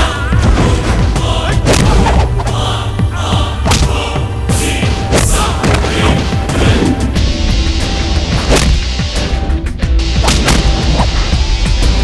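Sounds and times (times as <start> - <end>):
loud background score: 0.0 - 12.0
sharp punch hit: 8.4 - 8.9.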